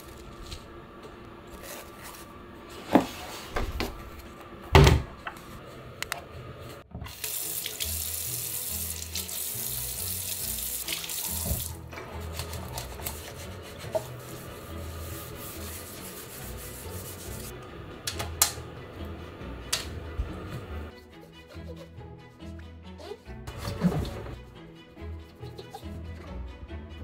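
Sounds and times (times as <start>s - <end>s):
tap water running into basin: 7.0s - 13.4s.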